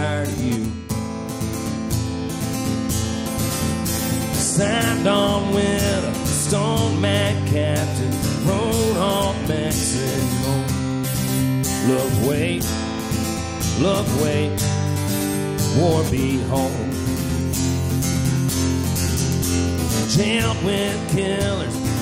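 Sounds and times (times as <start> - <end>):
acoustic guitar strumming: 0.0 - 22.0
person singing folk song: 0.0 - 22.0.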